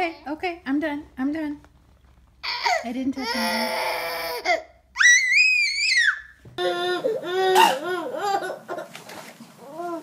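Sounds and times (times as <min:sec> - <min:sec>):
toddler scream-crying: 0:03.4 - 0:07.6
baby laughing: 0:06.6 - 0:09.0.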